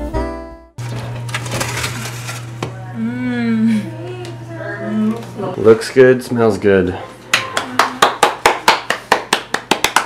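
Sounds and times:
metal oven rack scraping and rattling: 0.8s - 2.6s
steady low hum: 0.8s - 8.0s.

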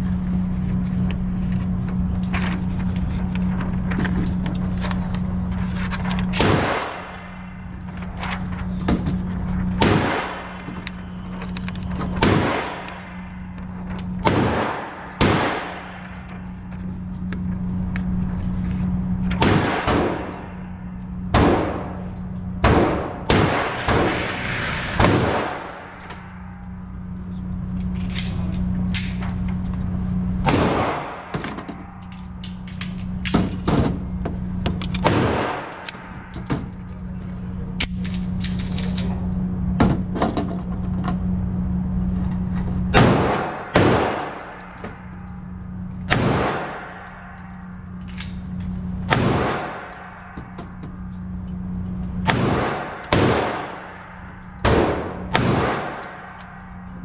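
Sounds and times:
steady low hum: 0.0s - 57.0s
gunshots echoing indoors: 6.2s - 7.9s, 9.6s - 11.2s, 12.0s - 16.6s, 19.0s - 27.8s, 30.3s - 36.7s, 42.9s - 57.0s.

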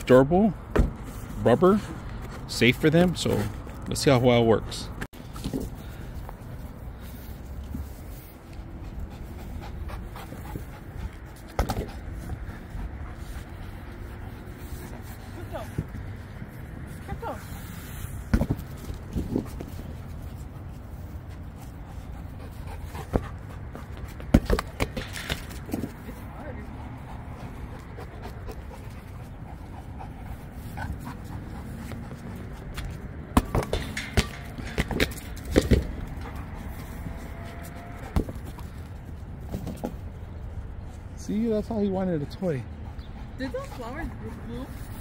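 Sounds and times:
sharp knocks and thuds: 0.7s - 1.1s, 18.2s - 19.7s
dogs panting: 5.8s - 39.4s, 40.4s - 45.0s.

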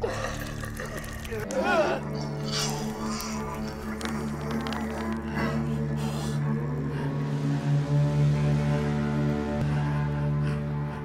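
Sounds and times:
film score low drone: 0.0s - 11.0s.

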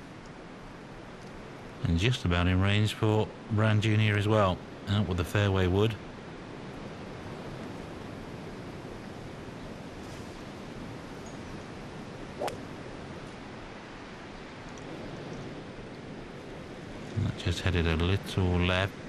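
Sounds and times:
wind hiss: 0.0s - 19.0s
golf ball struck sharp crack: 12.4s - 12.8s.

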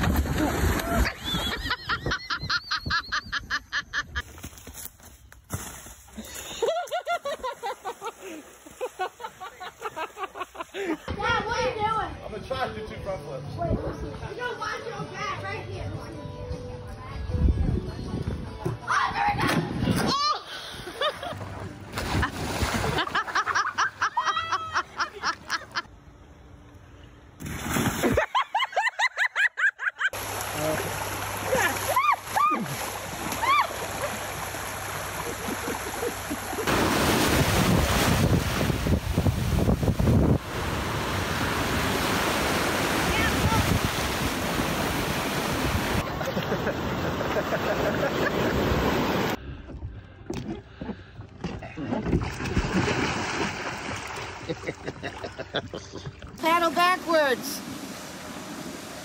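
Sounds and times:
water splashing: 0.0s - 2.0s, 6.9s - 11.1s, 21.3s - 24.1s, 27.4s - 28.4s, 30.1s - 49.4s, 51.8s - 59.0s
people laughing: 0.4s - 4.2s, 6.3s - 11.1s, 22.2s - 25.9s, 28.0s - 30.2s, 46.0s - 48.7s, 54.4s - 56.3s
surf breaking on a beach: 36.6s - 49.4s.

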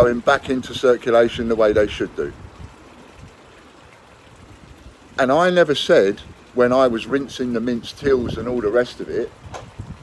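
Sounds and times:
outdoor background hiss: 0.0s - 10.0s.

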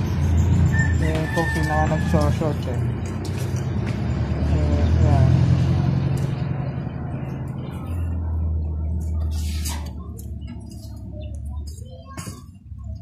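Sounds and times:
low motor rumble: 0.0s - 13.0s
faint voices: 4.4s - 13.0s.

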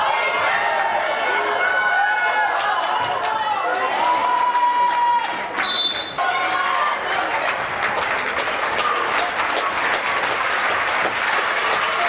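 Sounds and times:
voices and crowd murmur: 0.0s - 12.0s.

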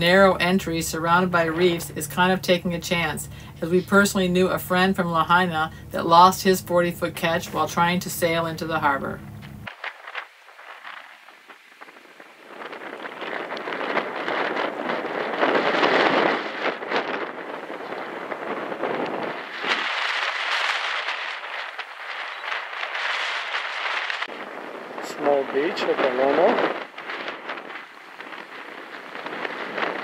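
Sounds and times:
ocean surf breaking: 9.6s - 30.0s.

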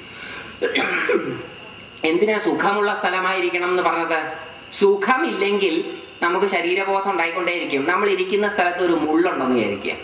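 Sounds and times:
man clearing his throat: 0.6s - 1.5s
man coughing: 0.6s - 1.5s.

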